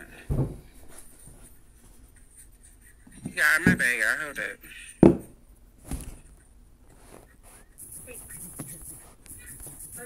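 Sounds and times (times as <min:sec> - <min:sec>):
scratchy rustling: 0:05.8 - 0:10.0.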